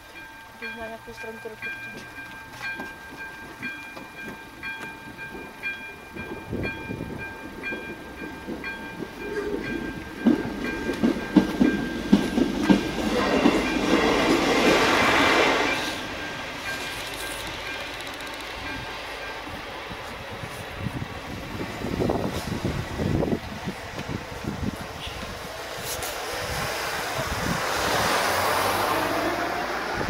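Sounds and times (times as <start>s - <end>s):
level crossing warning tone: 0.0s - 14.4s
train rumble: 0.0s - 30.0s
wheels clacking over rail joints: 0.1s - 20.2s.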